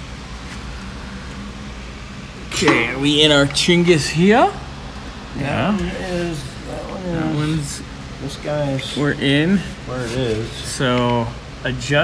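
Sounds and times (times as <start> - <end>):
low background hum with hiss: 0.0 - 12.0.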